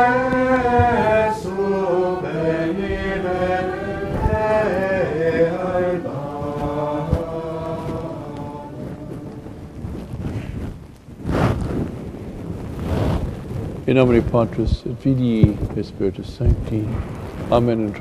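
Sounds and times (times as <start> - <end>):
slow sung chant: 0.0 - 10.4.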